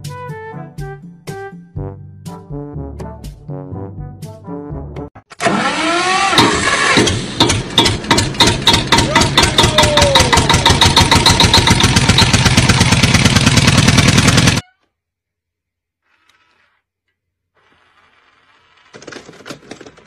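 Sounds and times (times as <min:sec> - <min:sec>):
engine starting and running: 0:05.2 - 0:14.6, 0:17.6 - 0:20.0.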